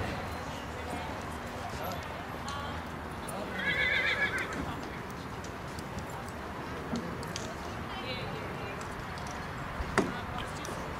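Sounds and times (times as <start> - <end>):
horse whinnying: 3.5 - 4.5.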